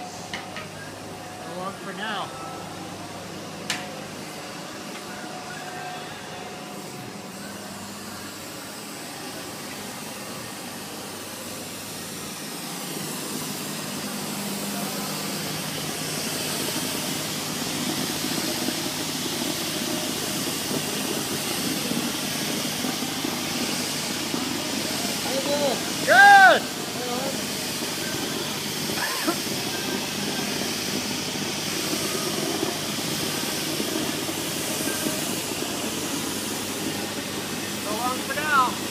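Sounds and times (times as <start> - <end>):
insulation spraying hiss: 6.0 - 38.9.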